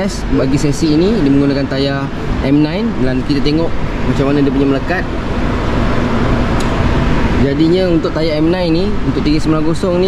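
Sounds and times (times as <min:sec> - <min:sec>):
background rumble and hiss: 0:00.0 - 0:10.0.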